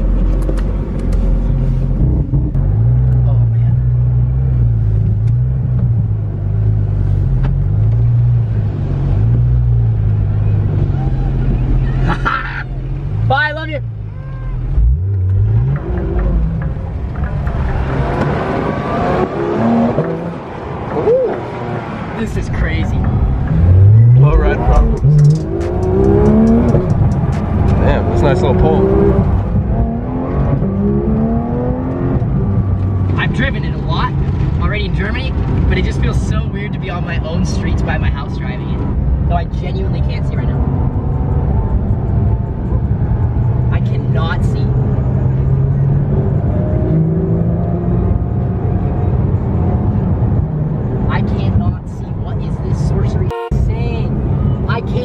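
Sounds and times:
car engine accelerating: 0:00.0 - 0:55.0.

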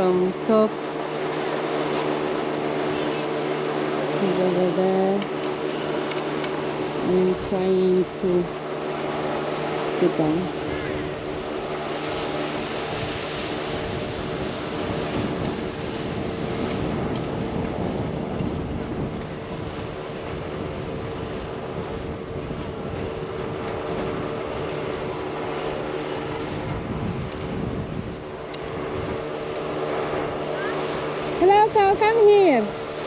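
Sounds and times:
steady low hum: 0:00.0 - 0:33.0
wind rushing over microphone: 0:00.0 - 0:33.0.

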